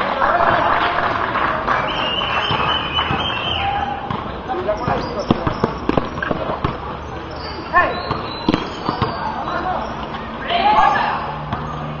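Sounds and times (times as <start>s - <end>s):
voices shouting: 1.7s - 5.8s, 7.0s - 12.0s
basketball bouncing on concrete: 2.4s - 7.0s, 7.9s - 9.4s.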